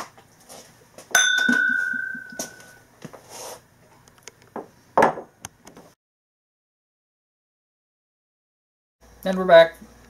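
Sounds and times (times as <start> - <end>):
glasses clinking: 1.2 - 2.8.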